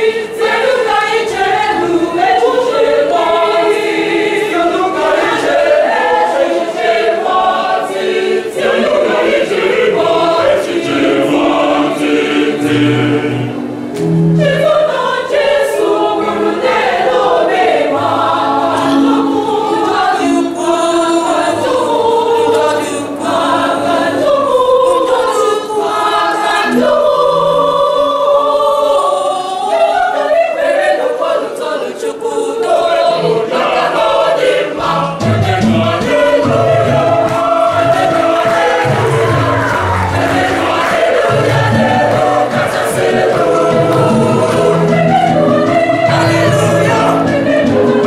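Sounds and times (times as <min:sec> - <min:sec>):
choir singing a hymn: 0:00.0 - 0:48.0.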